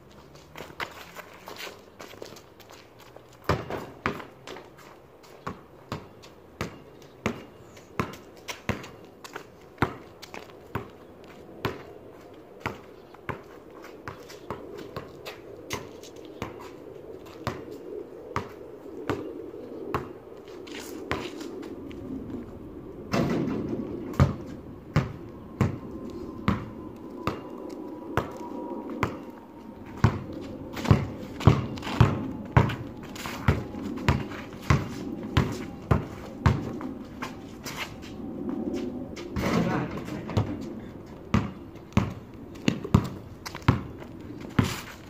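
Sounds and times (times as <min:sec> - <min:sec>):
basketball bouncing on concrete: 0:03.4 - 0:04.3, 0:05.4 - 0:09.0, 0:24.1 - 0:25.8, 0:30.0 - 0:32.8, 0:33.4 - 0:36.8, 0:41.3 - 0:44.7
low rushing noise: 0:13.6 - 0:44.5.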